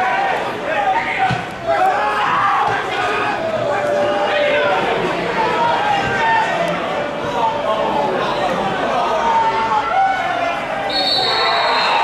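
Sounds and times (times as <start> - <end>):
players and crowd shouting: 0.0 - 12.0
referee's whistle: 10.8 - 12.0.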